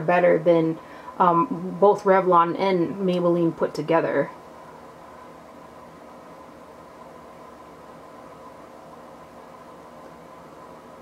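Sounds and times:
steady background hum and hiss: 0.0 - 11.0.

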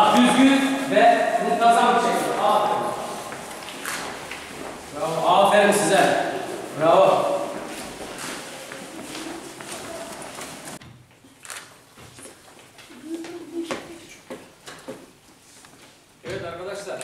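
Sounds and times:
children's footsteps: 0.0 - 16.1
low murmuring voices: 6.3 - 10.8.

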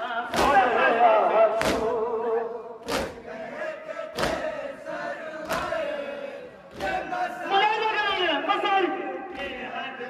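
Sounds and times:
men chanting: 0.0 - 10.0
hands slapping chests: 1.6 - 1.9, 2.8 - 3.2, 4.1 - 4.6, 5.4 - 5.8, 6.7 - 7.0.

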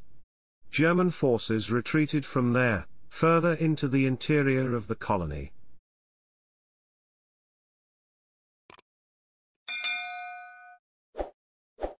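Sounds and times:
notification bell ding: 9.7 - 10.8.

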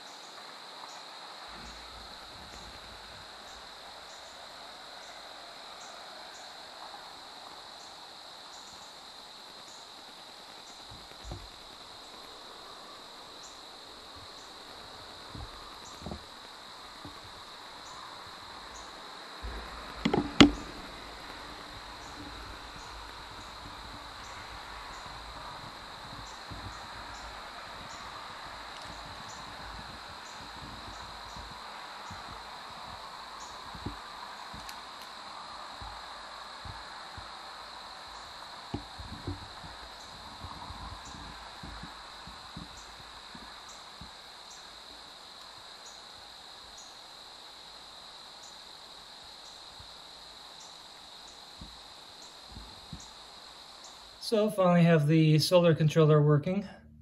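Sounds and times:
insect buzzing: 0.0 - 55.4
rustles: 0.0 - 55.5
insect chirps: 0.0 - 57.0
soft knocks: 10.9 - 11.7, 14.1 - 17.5, 19.4 - 45.0.

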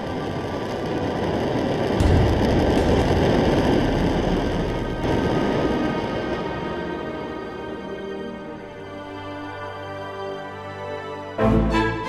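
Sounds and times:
rocket engine roar: 0.0 - 8.2
deep boom: 2.0 - 6.8.

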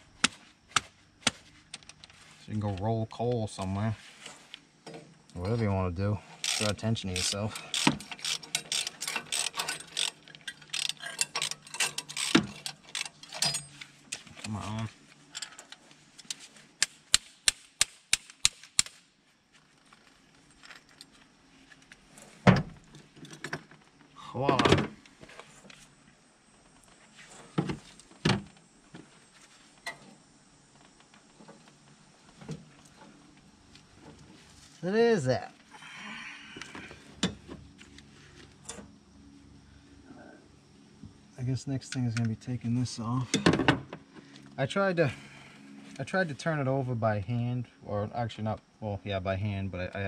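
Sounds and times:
socket ratchet clicking: 6.4 - 13.7.

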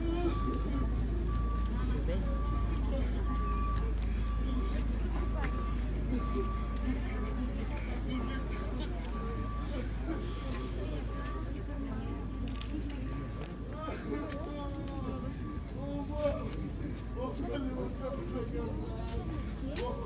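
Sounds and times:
low engine rumble: 0.0 - 20.0
people talking: 0.0 - 20.0
reversing alarm beeping: 0.0 - 20.0.

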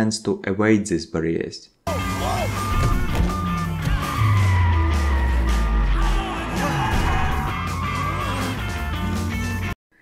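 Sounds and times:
background music: 1.9 - 9.8.

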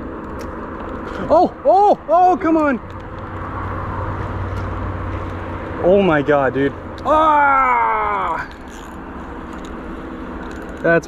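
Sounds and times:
outdoor noise: 0.0 - 11.0
fishing reel whirring: 8.2 - 9.7.

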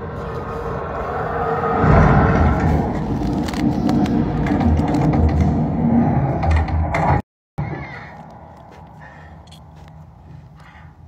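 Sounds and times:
loud low rumble: 0.0 - 7.2
knocks and clicks: 2.3 - 7.2.

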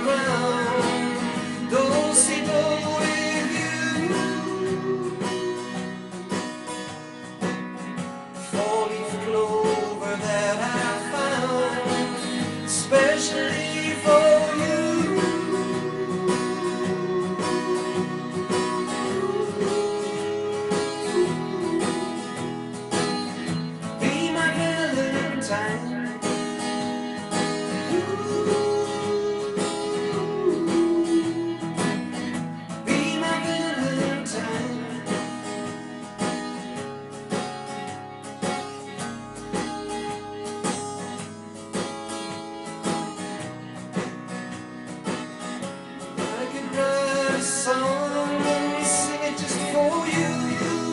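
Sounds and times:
man singing: 0.0 - 6.1, 8.4 - 36.0, 46.0 - 50.9
strummed acoustic guitar: 0.0 - 50.9.

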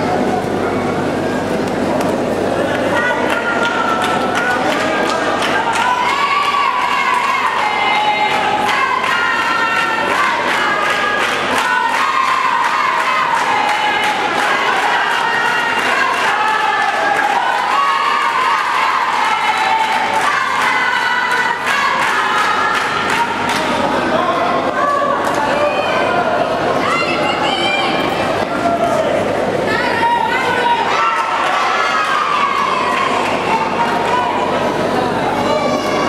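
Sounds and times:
crowd shouting and cheering: 0.0 - 36.0.

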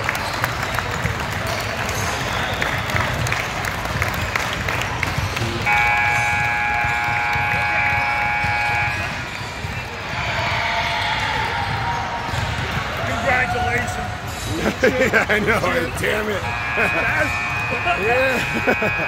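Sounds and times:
hubbub of gym crowd: 0.0 - 19.0
scoreboard horn blare: 5.4 - 9.4, 15.6 - 19.0.

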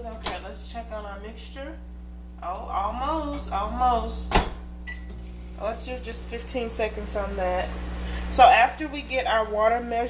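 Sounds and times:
person talking: 0.0 - 1.8, 5.6 - 10.0.

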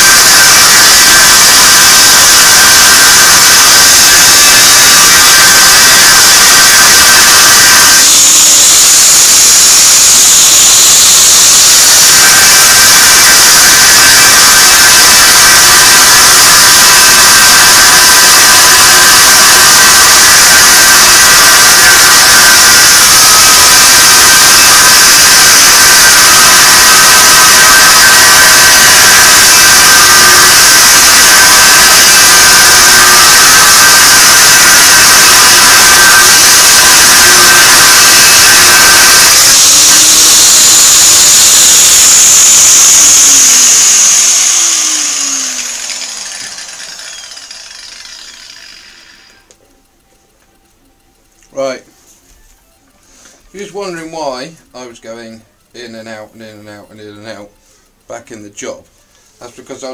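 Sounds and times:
angle grinder cutting steel: 0.0 - 49.6.

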